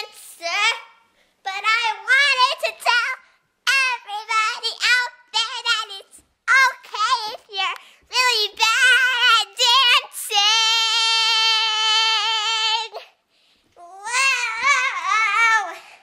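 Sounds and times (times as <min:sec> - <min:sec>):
girl singing unaccompanied: 0:00.0 - 0:13.2, 0:13.8 - 0:16.0.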